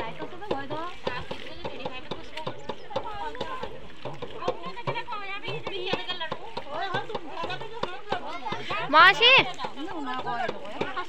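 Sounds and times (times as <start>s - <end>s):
women talking over one another: 0.0s - 11.0s.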